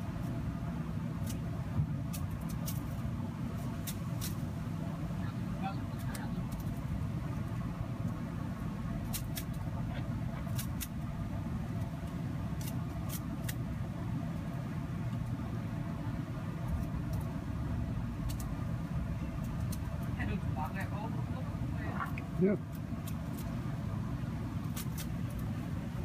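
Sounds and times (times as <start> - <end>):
bird pecking and scratching leaves: 0.0 - 26.0
low background rumble: 0.0 - 26.0.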